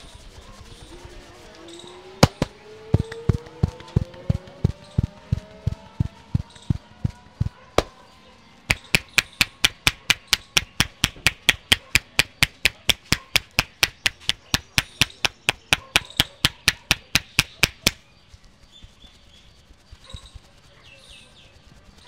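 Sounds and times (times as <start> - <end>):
hands slapping scalp: 2.2 - 7.9, 8.6 - 18.0.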